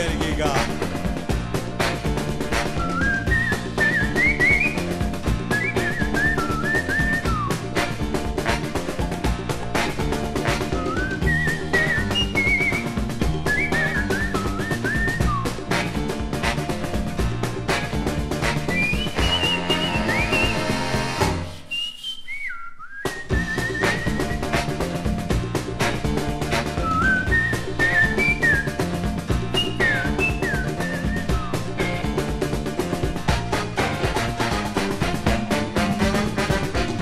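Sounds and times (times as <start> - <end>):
band with piano bass and drums: 0.0 - 21.6, 23.0 - 37.0
whistled melody: 2.5 - 7.9, 10.4 - 15.9, 18.4 - 25.0, 26.5 - 32.2.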